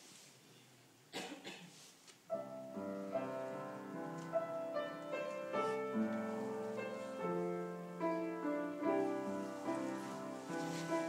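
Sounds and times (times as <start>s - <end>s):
person coughing: 1.1s - 1.8s.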